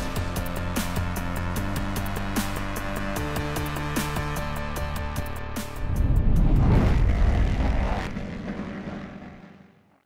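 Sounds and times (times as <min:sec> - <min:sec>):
low rumbling whoosh: 0:05.6 - 0:09.7.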